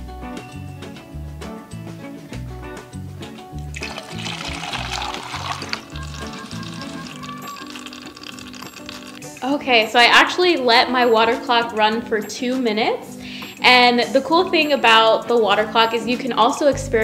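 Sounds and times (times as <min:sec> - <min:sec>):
music with repeating bass line: 0:00.1 - 0:07.6
water pouring and splashing: 0:03.7 - 0:09.5.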